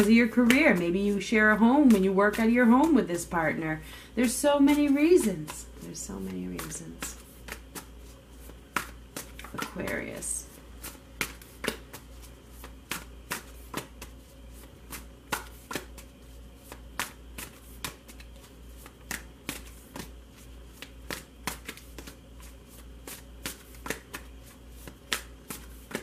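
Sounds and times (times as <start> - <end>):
steady low hum: 0.0 - 26.0
cards being shuffled: 4.2 - 26.0.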